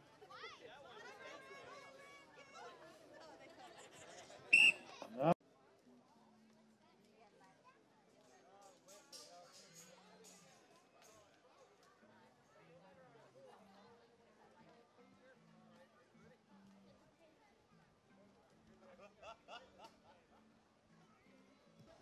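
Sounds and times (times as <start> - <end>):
whistle blast: 4.5 - 4.8.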